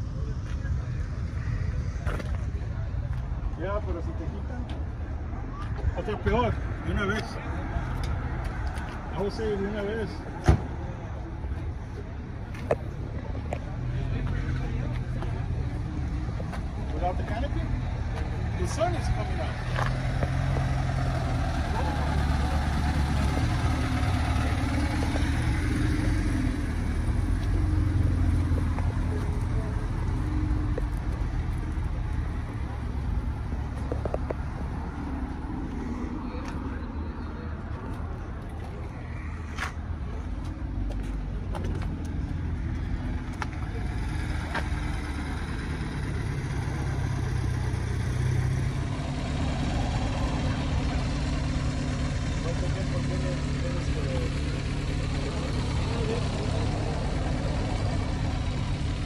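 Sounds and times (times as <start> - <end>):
faint voices: 0.0 - 59.0
vehicle engine idling: 0.0 - 59.0.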